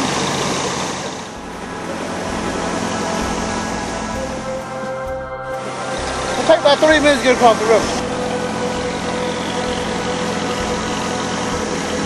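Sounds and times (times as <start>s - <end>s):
ferry engine humming: 0.0s - 12.0s.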